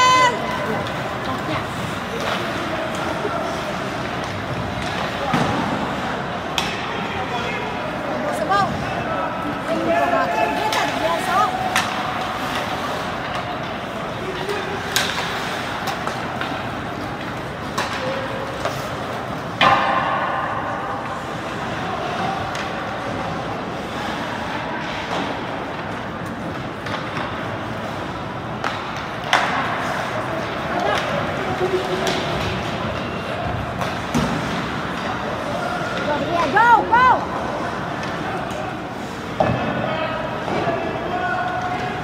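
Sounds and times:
echoing hall noise: 0.0 - 42.0
spectators' voices: 0.0 - 42.0
hockey sticks and puck knocks: 0.7 - 7.0, 10.6 - 21.2, 24.8 - 36.3, 39.3 - 42.0.

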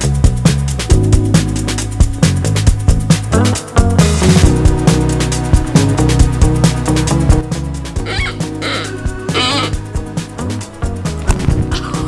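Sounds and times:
background music with steady beat: 0.0 - 12.0
dog toy squeaker squealing: 8.0 - 9.8.

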